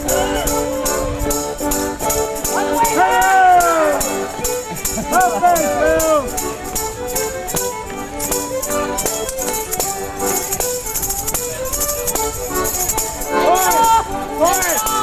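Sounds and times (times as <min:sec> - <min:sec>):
folk dance tune: 0:00.0 - 0:15.0
jingle and click rhythm: 0:00.0 - 0:15.0
voices: 0:00.0 - 0:15.0.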